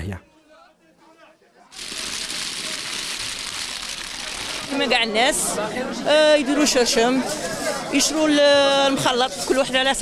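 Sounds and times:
walnuts pouring and clattering: 0:01.8 - 0:04.7.

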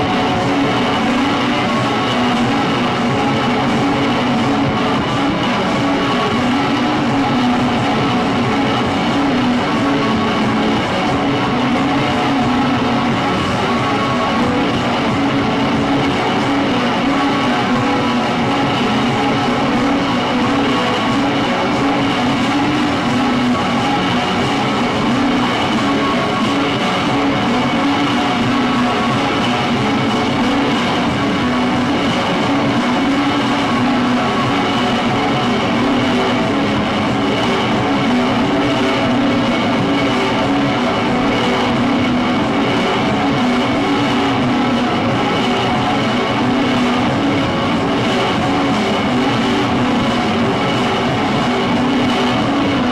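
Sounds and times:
high whine: 0:00.0 - 0:52.9
low drone: 0:00.0 - 0:52.9
wall of electronic noise: 0:00.0 - 0:52.9.

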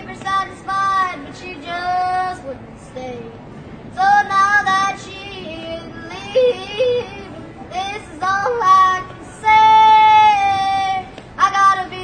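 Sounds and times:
boy yodeling: 0:05.7 - 0:11.8.

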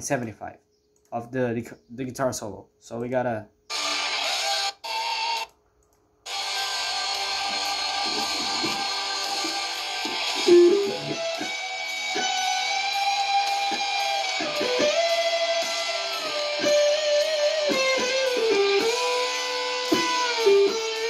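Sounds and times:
electric guitar solo: 0:06.3 - 0:21.0
slowed song playback: 0:06.3 - 0:21.0.

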